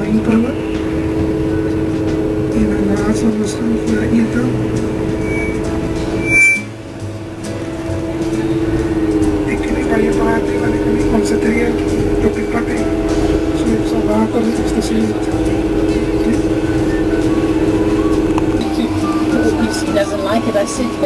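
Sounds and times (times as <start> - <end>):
bus engine hum and road noise: 0.0 - 21.0.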